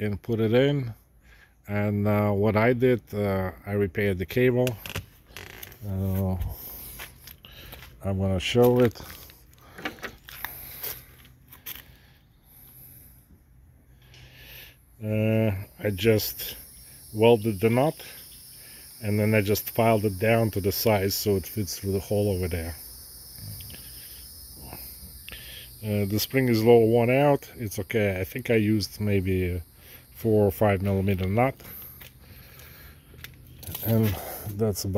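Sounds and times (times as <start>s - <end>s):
high-pitched background hiss: 0.0s - 34.9s.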